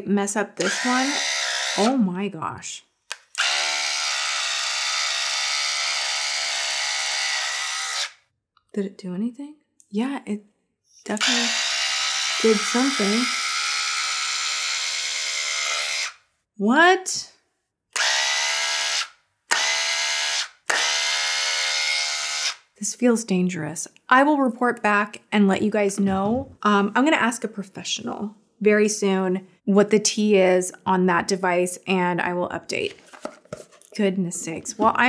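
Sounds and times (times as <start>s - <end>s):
hair trimmer motor whine: 0.6s - 1.9s, 3.4s - 8.2s, 11.2s - 16.2s, 18.0s - 22.6s.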